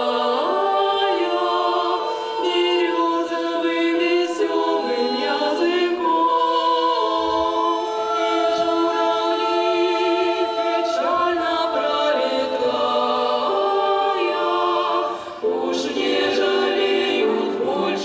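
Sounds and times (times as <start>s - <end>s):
women singing a cappella: 0.0s - 18.0s.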